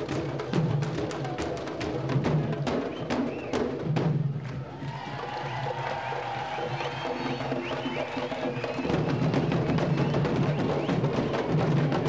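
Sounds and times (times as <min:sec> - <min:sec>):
drum line playing barrel drums: 0:00.0 - 0:12.0.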